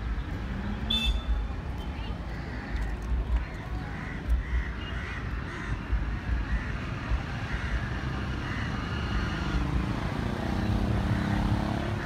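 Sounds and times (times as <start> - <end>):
engine hum: 0.0 - 12.0.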